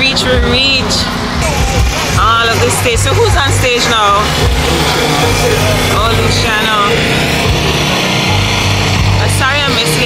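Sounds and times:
heavy pulsing bass line: 0.0 - 10.0
live reggae music: 0.0 - 10.0.

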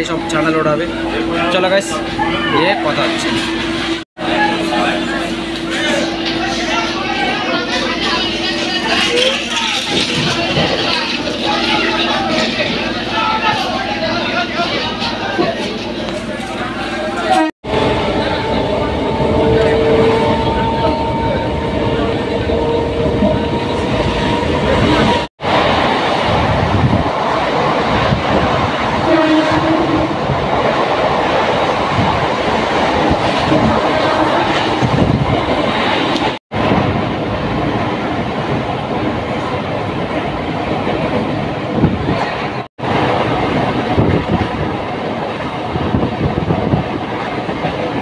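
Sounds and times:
train wheels rumbling on track: 0.0 - 48.0.

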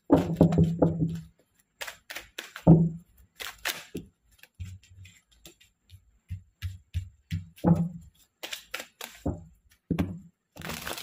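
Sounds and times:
cards shuffling: 1.1 - 6.0, 8.0 - 11.0.

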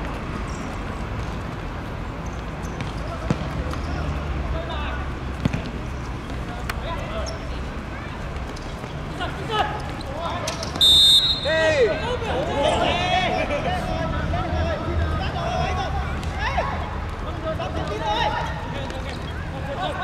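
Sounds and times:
ball being kicked: 2.8 - 3.8, 5.4 - 6.4
players shouting: 9.1 - 20.0
referee's whistle blast: 10.8 - 11.6.

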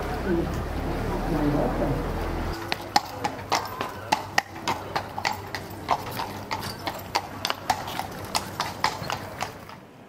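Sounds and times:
horse hooves on cobblestones: 0.0 - 10.0.

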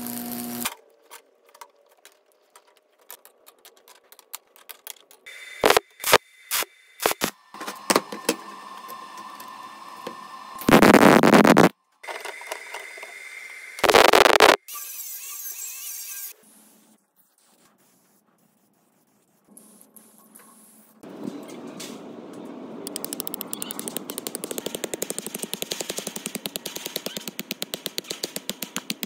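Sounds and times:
arc-welding crackle: 0.0 - 0.7, 5.6 - 7.3, 10.6 - 11.7, 13.8 - 14.6.

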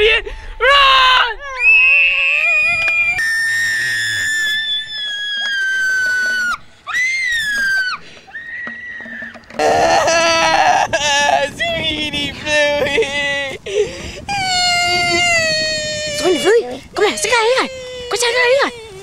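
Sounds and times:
boy screaming in pain: 9.6 - 11.4, 14.3 - 19.0.

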